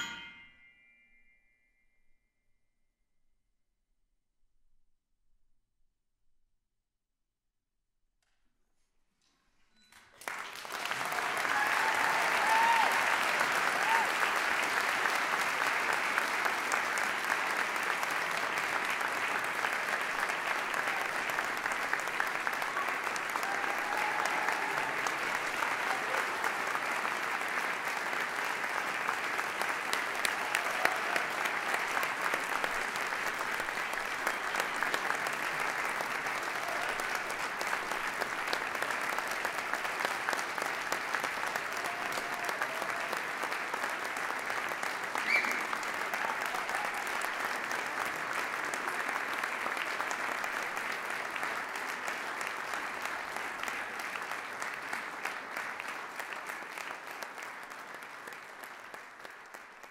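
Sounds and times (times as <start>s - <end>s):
audience applauding: 9.9s - 59.9s.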